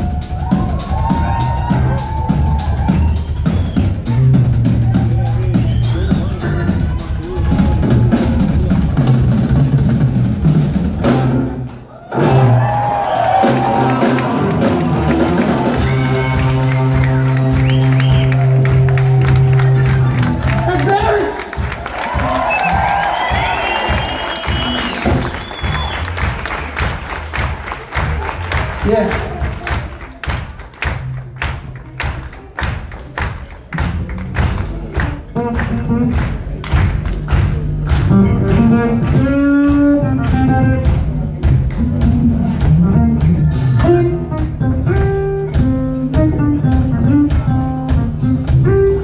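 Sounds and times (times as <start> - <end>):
bass notes: 0.0 - 49.0
drum kit: 0.0 - 49.0
rock band playing: 0.0 - 49.0
electric guitar: 34.4 - 49.0.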